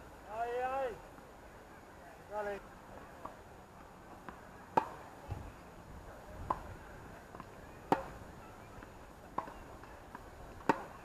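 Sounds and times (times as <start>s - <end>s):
tennis ball pocks: 4.2s - 5.4s, 7.3s - 8.2s, 9.4s - 11.0s.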